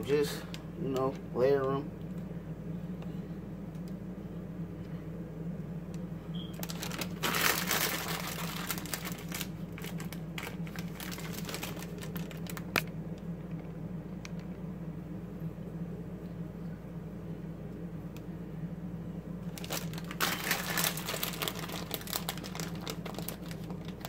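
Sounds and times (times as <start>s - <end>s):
steady low hum: 0.0s - 24.0s
plastic package crinkling: 6.5s - 13.0s, 19.4s - 24.0s.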